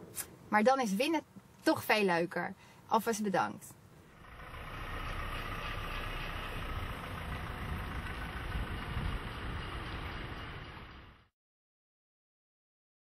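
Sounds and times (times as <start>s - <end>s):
car driving off: 4.0s - 11.3s.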